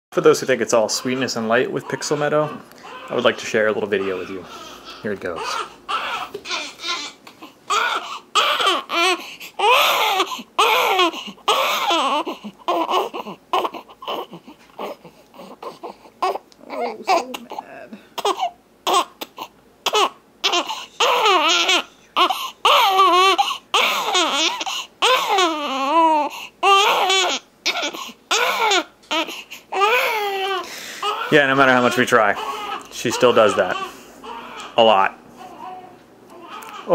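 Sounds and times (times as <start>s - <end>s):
baby crying: 0.8s - 36.9s.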